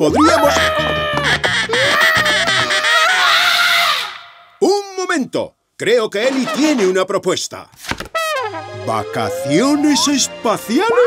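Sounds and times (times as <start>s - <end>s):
cartoon boy yelling: 0.1s - 4.2s
squawking duck-like voice: 0.6s - 4.4s.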